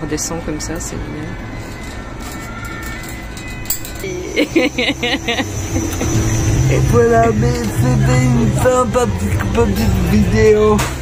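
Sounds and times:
faint music: 0:00.0 - 0:11.0
ferris wheel mechanical rumble: 0:03.8 - 0:11.0.

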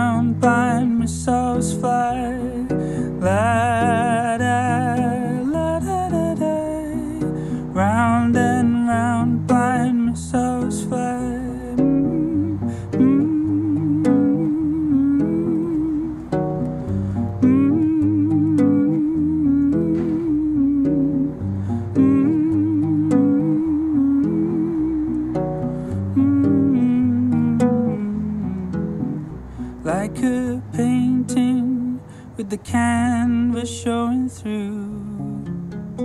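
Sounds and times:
person humming a melody: 0:00.0 - 0:35.5
acoustic guitar picked and strummed: 0:00.0 - 0:36.0.

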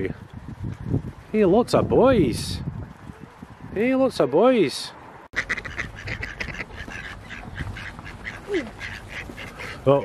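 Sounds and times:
ducks quacking: 0:05.3 - 0:10.0.

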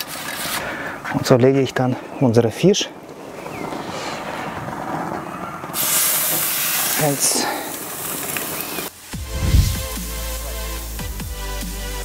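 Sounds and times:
fish sizzling on a grill: 0:05.8 - 0:11.0.

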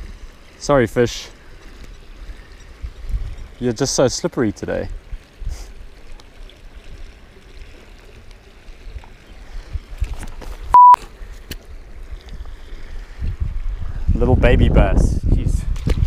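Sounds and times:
censor bleep: 0:10.7 - 0:11.0.

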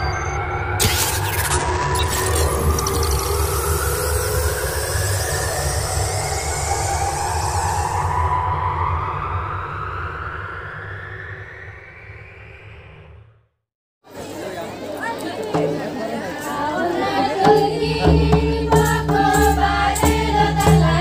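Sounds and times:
rising whooshing tones: 0:01.6 - 0:13.5.

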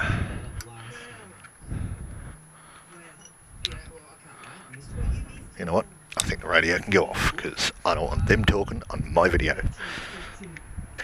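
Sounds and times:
radio talk: 0:00.0 - 0:10.6.

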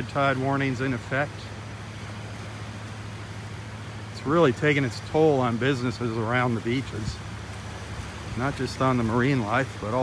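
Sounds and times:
breeze and shallow water hiss: 0:00.0 - 0:10.0
low steady hum: 0:00.0 - 0:10.0.

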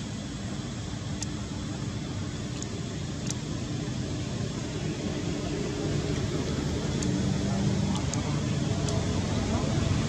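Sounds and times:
faint steady hum: 0:00.0 - 0:10.0
low outdoor rumble: 0:00.0 - 0:10.0.

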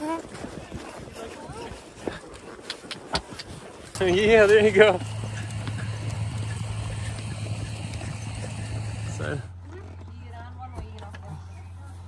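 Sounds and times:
wind on microphone: 0:00.0 - 0:02.2
horse hooves on dirt track: 0:00.0 - 0:12.0
steady low hum: 0:04.2 - 0:12.0.

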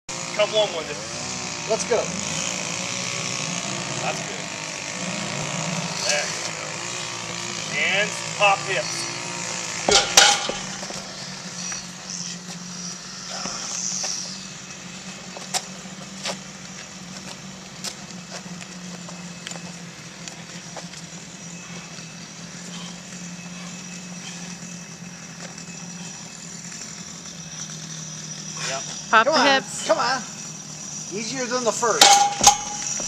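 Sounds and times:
steady low hum: 0:00.8 - 0:33.0
stone landing with thud: 0:09.9 - 0:11.0.

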